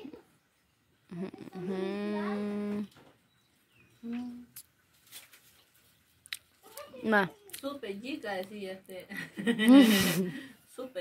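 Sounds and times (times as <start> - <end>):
person humming: 1.1 - 2.9.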